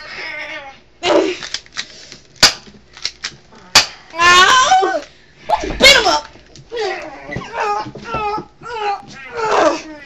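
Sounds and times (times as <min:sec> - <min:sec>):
child crying: 0:04.1 - 0:10.0.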